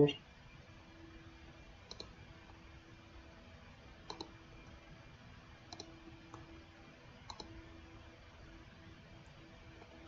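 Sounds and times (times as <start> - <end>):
faint steady hum: 0.0 - 10.0
computer mouse clicks: 1.9 - 2.2, 4.0 - 4.4, 5.7 - 6.5, 7.2 - 7.6.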